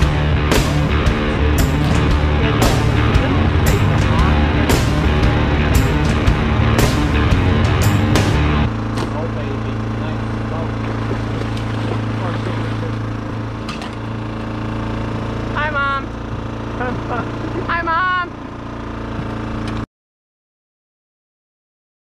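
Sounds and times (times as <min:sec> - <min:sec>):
background music: 0:00.0 - 0:14.2
boat motor humming: 0:00.0 - 0:19.9.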